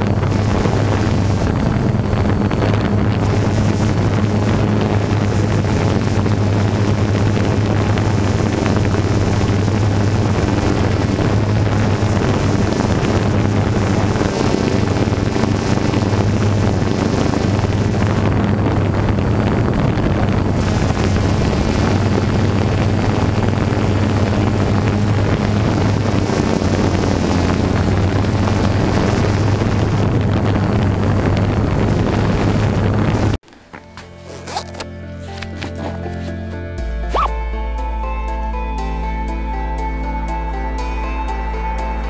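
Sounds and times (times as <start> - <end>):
wind on microphone: 0.0 - 33.4
drone propeller motors humming: 0.0 - 37.4
low drone: 0.0 - 42.0.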